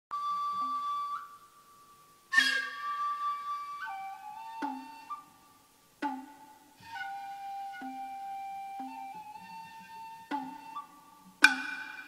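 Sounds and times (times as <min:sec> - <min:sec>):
flute high piercing note: 0:00.1 - 0:12.0.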